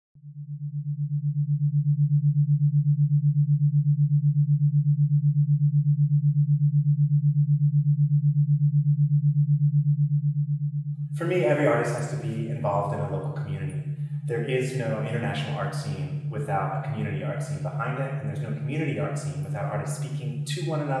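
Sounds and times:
pulsing electronic hum: 0.2 - 21.0.

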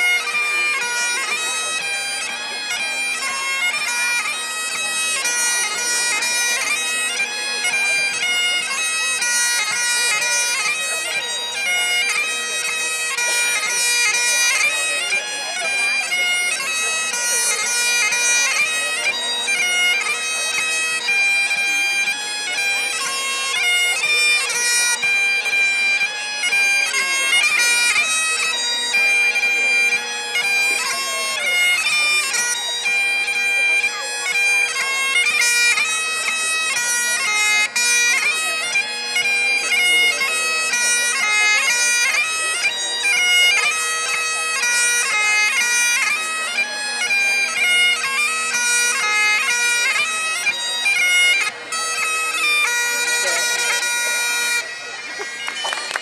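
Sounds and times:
bagpipe playing a quick tune: 0.0 - 56.0.

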